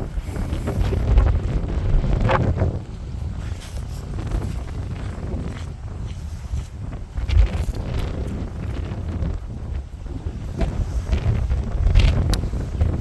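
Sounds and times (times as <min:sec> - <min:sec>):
strong wind buffeting microphone: 0:00.0 - 0:13.0.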